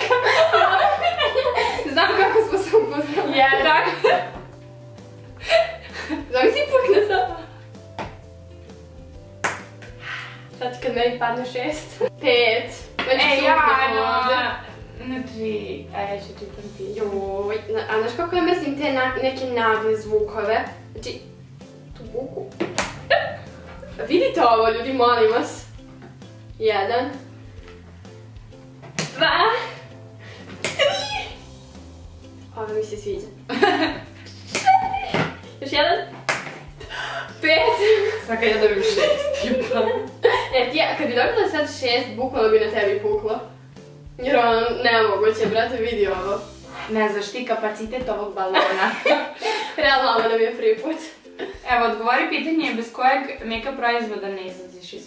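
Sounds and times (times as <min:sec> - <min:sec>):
girls laughing and squealing: 0:00.0 - 0:04.4, 0:23.1 - 0:23.9, 0:30.8 - 0:31.4, 0:33.5 - 0:35.5, 0:37.4 - 0:40.6
soft background music: 0:00.0 - 0:55.0.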